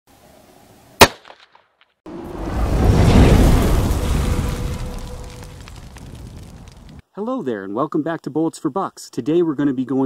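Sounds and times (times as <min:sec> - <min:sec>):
rifle shot: 0:01.0 - 0:01.6.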